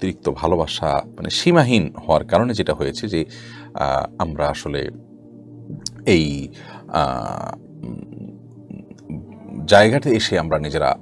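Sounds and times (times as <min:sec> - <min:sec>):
quiet background music: 0:00.0 - 0:11.0
man speaking: 0:05.7 - 0:11.0.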